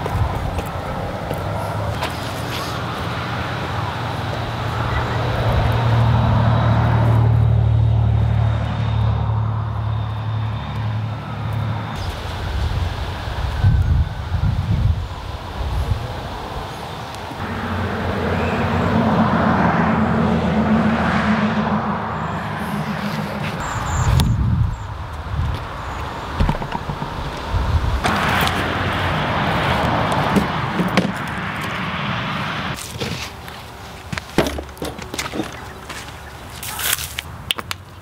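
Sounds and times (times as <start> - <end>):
higher-pitched engine note: 17.4 - 24.0
low rumbling: 17.4 - 30.8
vehicle engine running: 17.4 - 32.1.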